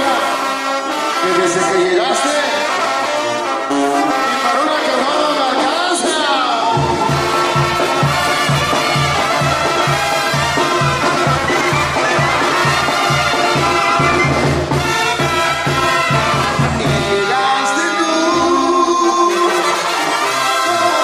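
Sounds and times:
brass band playing: 0:00.0 - 0:21.0
tuba pulsing bass line: 0:00.0 - 0:21.0
drums: 0:05.6 - 0:21.0.

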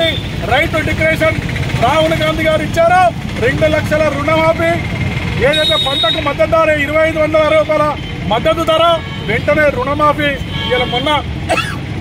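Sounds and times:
man speaking loudly: 0:00.0 - 0:11.4
street noise rumble: 0:00.0 - 0:12.0.

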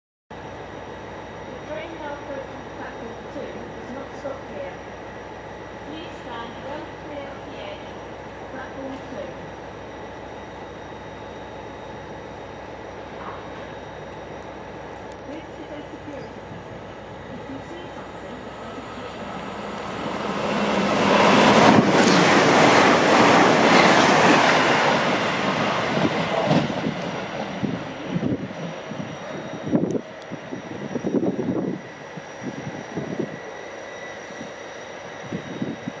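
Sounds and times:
train passing at speed: 0:00.4 - 0:36.0.

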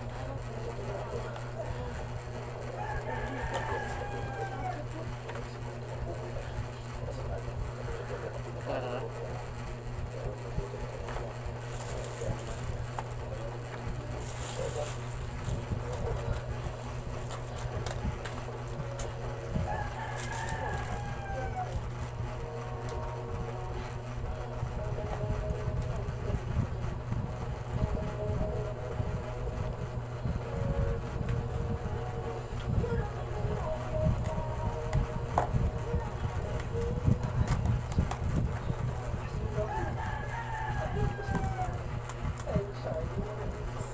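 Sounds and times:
steady low hum: 0:00.0 - 0:43.9
distant rooster crowing: 0:02.6 - 0:05.0, 0:18.6 - 0:23.8, 0:39.6 - 0:42.3
plastic bag rustling: 0:14.0 - 0:22.0.

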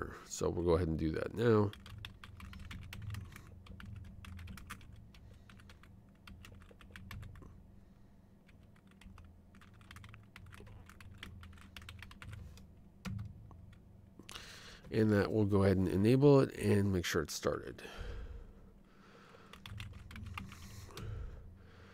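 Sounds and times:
faint low hum: 0:00.0 - 0:21.9.

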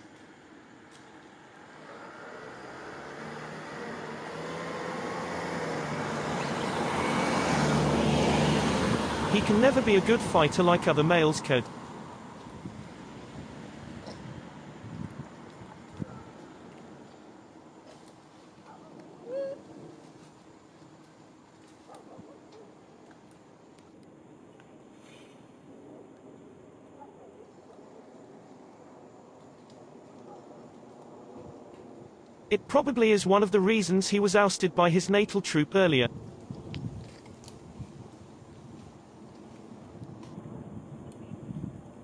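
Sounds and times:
vehicle engine approaching: 0:01.3 - 0:17.3
monkey coo call: 0:19.2 - 0:19.7.

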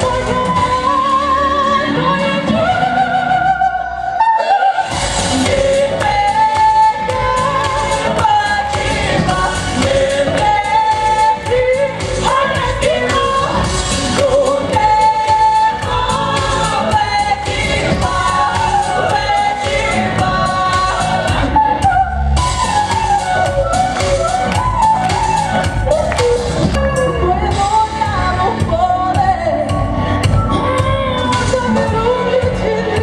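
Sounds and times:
instrumental accompaniment with beat: 0:00.0 - 0:33.0
woman singing pop song: 0:00.0 - 0:33.0.

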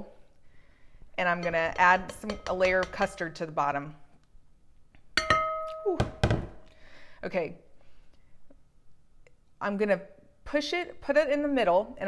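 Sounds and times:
metal ladle striking glass dish: 0:05.2 - 0:06.2
glass ringing: 0:05.2 - 0:06.3.

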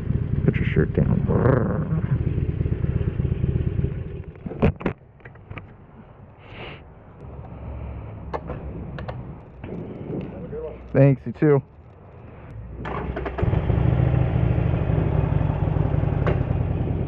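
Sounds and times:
motorcycle engine idling: 0:00.0 - 0:04.4, 0:13.0 - 0:17.0.

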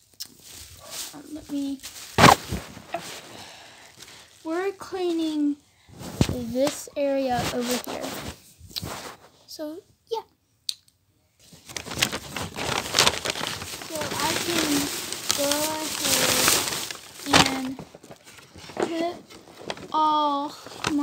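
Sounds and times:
paper and plastic bags rustling: 0:00.3 - 0:09.4, 0:11.4 - 0:21.0.

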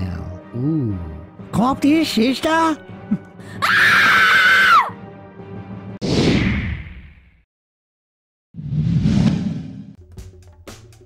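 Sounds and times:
high-pitched scream: 0:03.6 - 0:04.9.

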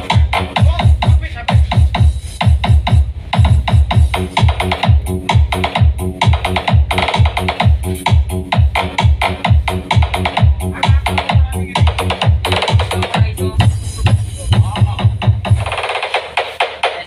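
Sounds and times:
electronic dance music: 0:00.0 - 0:17.0
heavy bass drum beat: 0:00.0 - 0:17.0.

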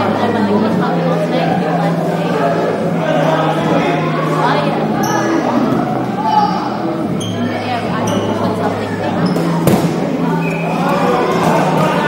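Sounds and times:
players' voices: 0:00.0 - 0:12.0
dodgeball smack: 0:09.4 - 0:10.1.

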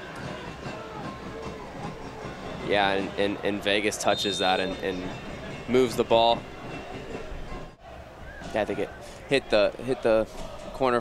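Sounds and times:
stadium crowd ambience: 0:00.0 - 0:11.0.

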